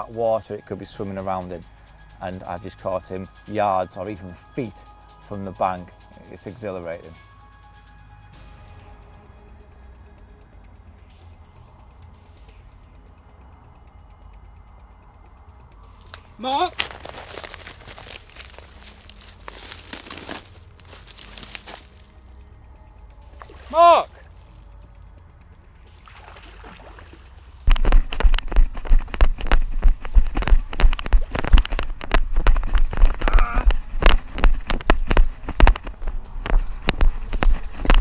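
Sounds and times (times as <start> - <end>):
footfalls crunching on dry leaves: 16.0 - 22.4, 27.6 - 38.0
vegetation crackling and rustling: 16.0 - 22.4, 26.4 - 38.0.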